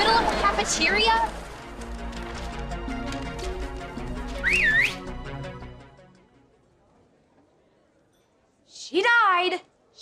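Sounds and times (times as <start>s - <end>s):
background music: 0.0s - 7.2s
loud two-finger whistle: 4.4s - 5.1s.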